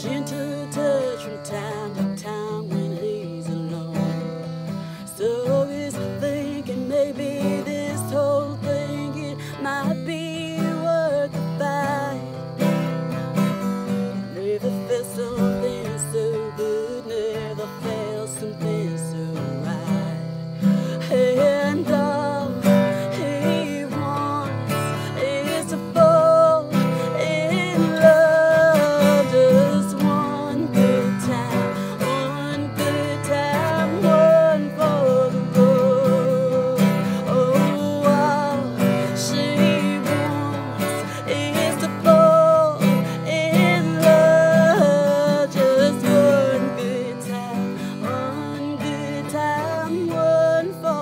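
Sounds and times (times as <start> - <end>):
strummed acoustic guitar: 0.0 - 51.0
woman singing slow song: 0.0 - 51.0.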